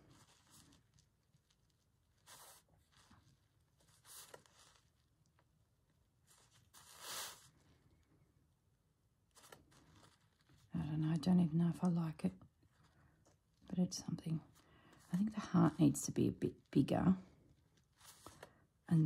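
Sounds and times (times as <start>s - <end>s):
pen scratching on fabric: 2.1s - 5.0s, 6.2s - 7.5s.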